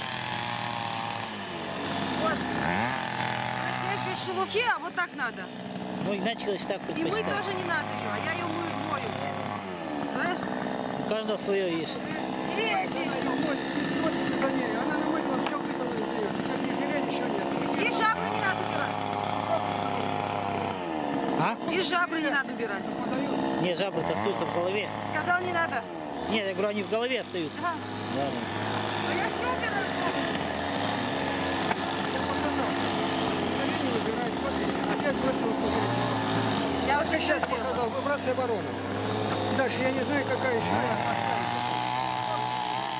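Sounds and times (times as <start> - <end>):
chainsaw engine revving: 0.0 - 42.9
motor humming: 0.0 - 42.9.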